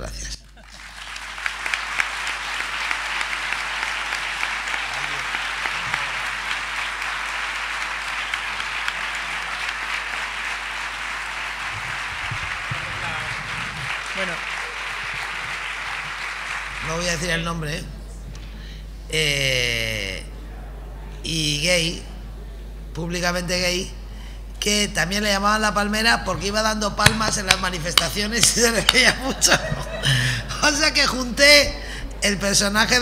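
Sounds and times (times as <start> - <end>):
audience applauding: 0.6 - 17.4, 27.0 - 30.3.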